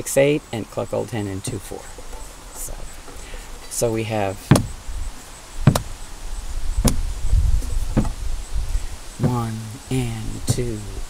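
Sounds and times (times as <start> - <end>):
sharp taps: 4.5 - 4.8, 5.6 - 6.0, 6.8 - 7.1, 8.0 - 8.2, 9.2 - 9.5.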